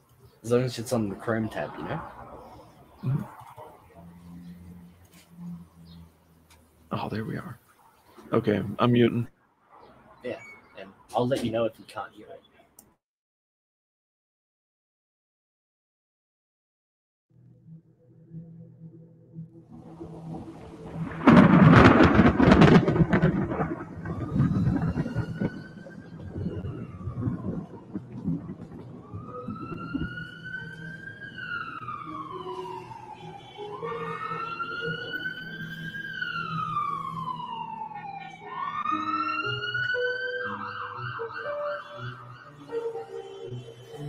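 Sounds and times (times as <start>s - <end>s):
low sustained musical notes: 0.0s - 7.7s, 17.3s - 44.0s
high tone rising and falling: 1.0s - 6.2s, 17.4s - 44.0s
loud crash: 20.2s - 29.0s.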